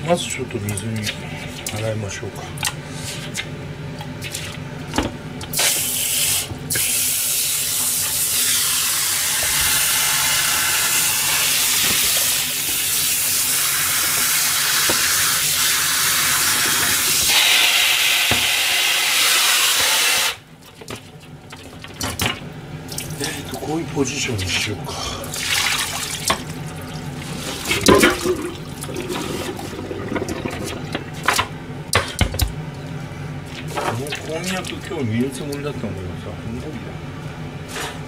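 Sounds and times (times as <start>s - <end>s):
tap water running into metal bowl: 9.4s - 21.0s, 25.4s - 31.5s.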